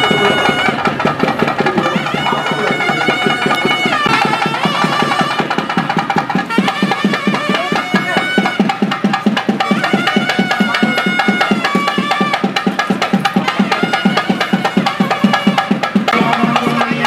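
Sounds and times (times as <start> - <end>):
reed wind instrument long notes: 0.0 - 8.8, 9.5 - 12.6, 13.4 - 16.8
quick steady drumming: 0.0 - 17.0.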